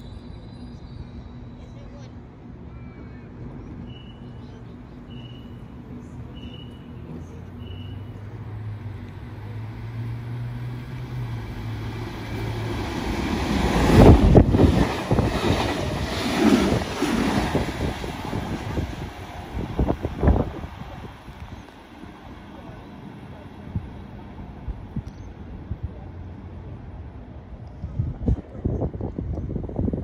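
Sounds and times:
electric train passing at speed: 0.0s - 30.0s.

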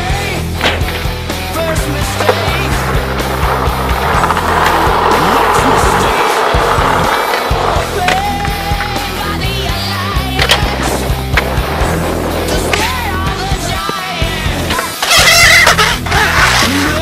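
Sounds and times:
background music: 0.0s - 15.1s
skateboard wheels rolling on concrete: 0.0s - 17.0s
skateboard clacking on concrete: 0.4s - 17.0s.

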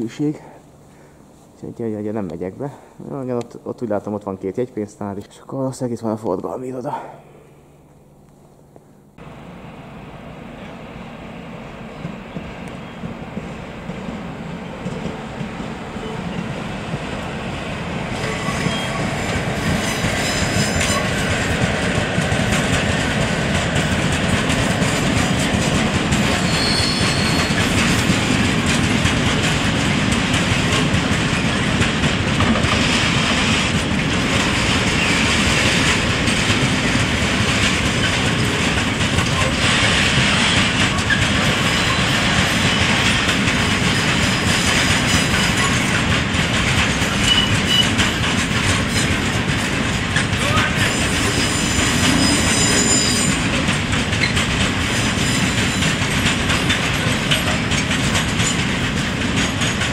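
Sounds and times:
freight train wheels rumbling: 0.0s - 59.9s
high squeal: 26.4s - 27.6s, 50.8s - 53.4s.

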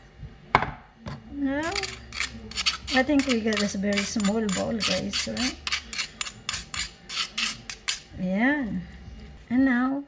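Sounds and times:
metal utensil scraping ceramic cup: 1.6s - 8.1s.

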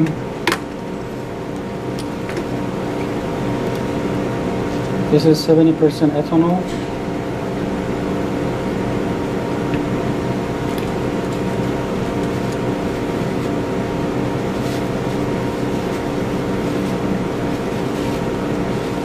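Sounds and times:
steady mechanical hum: 0.0s - 19.0s.

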